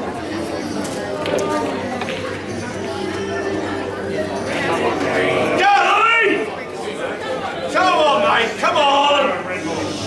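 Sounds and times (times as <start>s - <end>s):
murmur of people talking: 0.0s - 10.0s.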